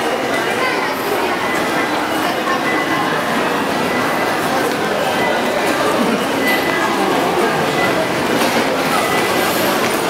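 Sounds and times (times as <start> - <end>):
crowd bustle: 0.0 - 10.0
train running on tracks: 0.0 - 10.0.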